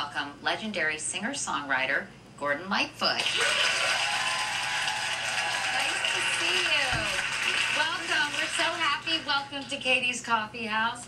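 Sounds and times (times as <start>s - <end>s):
studio audience applauding: 3.2s - 9.5s.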